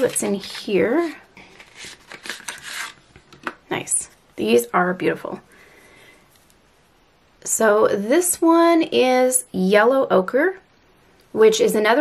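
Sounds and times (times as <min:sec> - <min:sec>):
cardboard box rustling open: 0:00.0 - 0:03.0.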